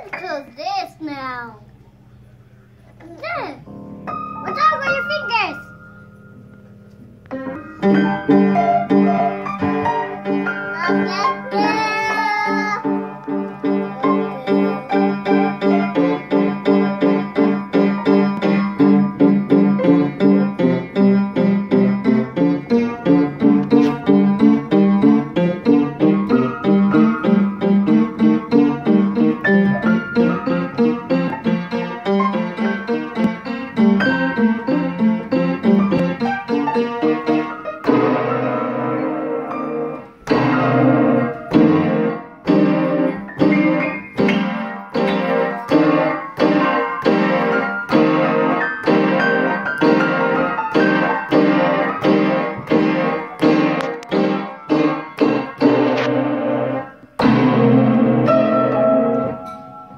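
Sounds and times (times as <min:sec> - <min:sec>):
piano keys banged: 0:03.2 - 0:59.9.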